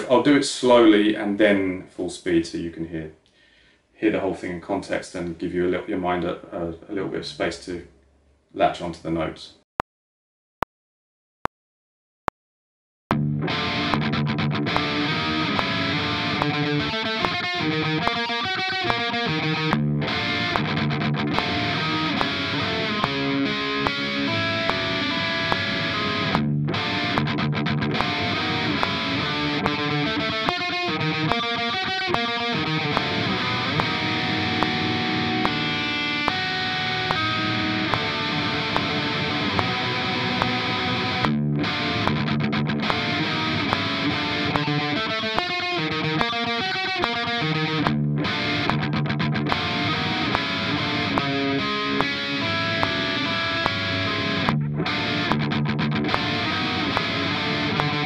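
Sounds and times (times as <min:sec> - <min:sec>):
distorted electric guitar riff: 0:13.1 - 0:58.0.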